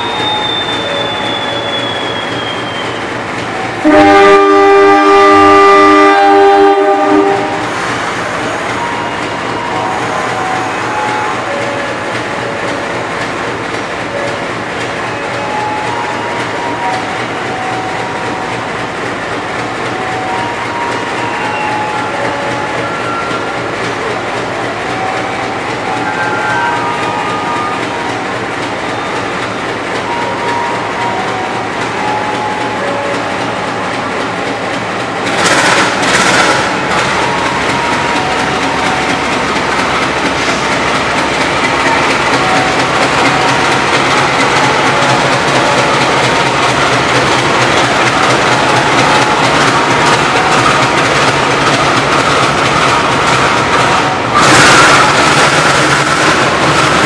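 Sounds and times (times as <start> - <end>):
diesel locomotive engine idling: 0.0 - 57.0
locomotive horn blasts: 3.8 - 7.8, 25.0 - 28.2.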